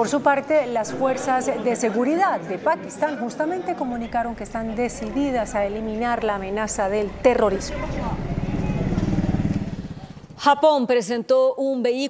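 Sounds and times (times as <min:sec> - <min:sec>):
vehicle engine running: 0:03.9 - 0:10.4.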